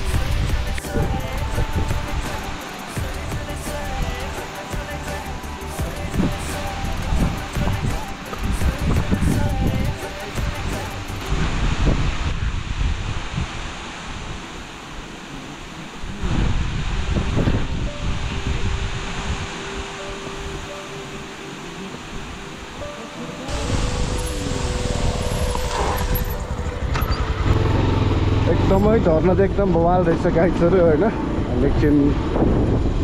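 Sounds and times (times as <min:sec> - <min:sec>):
wind on microphone: 0:00.0 - 0:03.4, 0:05.8 - 0:33.0
waterfall rushing: 0:00.0 - 0:32.4
faint background music: 0:17.7 - 0:32.4.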